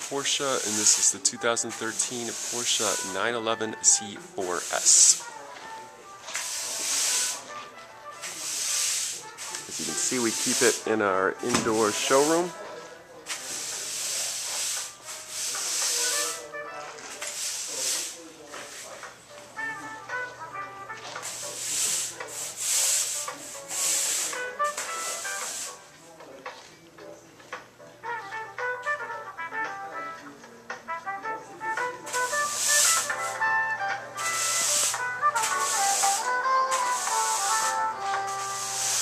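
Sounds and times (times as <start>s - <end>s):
faint background music: 0.0s - 39.0s
high hiss bursts: 38.4s - 39.0s.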